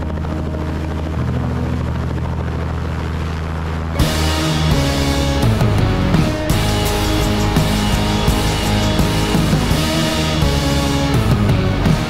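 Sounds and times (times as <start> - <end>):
helicopter rotor and engine: 0.0 - 12.0.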